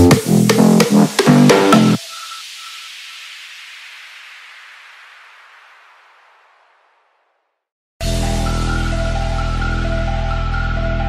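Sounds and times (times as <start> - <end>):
electronic dance beat: 0.0 - 3.6.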